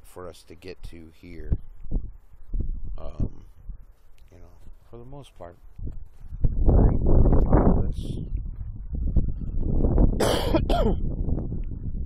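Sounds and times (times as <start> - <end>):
wind rumble on microphone: 0.0 - 12.0
man coughing: 10.2 - 11.0.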